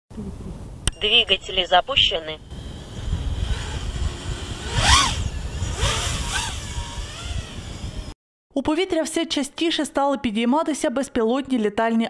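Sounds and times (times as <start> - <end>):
drone motors whining: 2.5 - 8.2.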